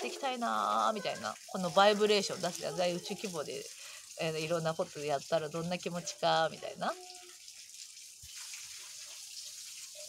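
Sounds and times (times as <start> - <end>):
soft hiss of water: 0.0 - 10.0.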